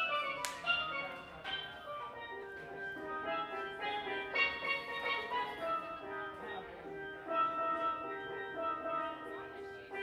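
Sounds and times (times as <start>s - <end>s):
live band music: 0.0s - 10.0s
steel pan melody: 0.0s - 10.0s.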